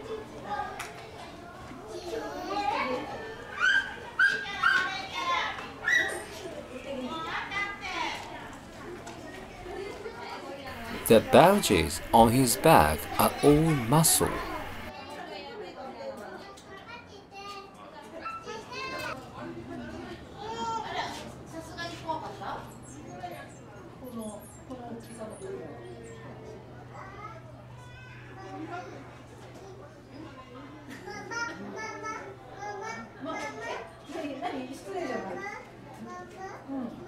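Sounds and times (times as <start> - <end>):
chatter of onlookers: 10.7 - 14.9
children's voices: 10.8 - 14.9.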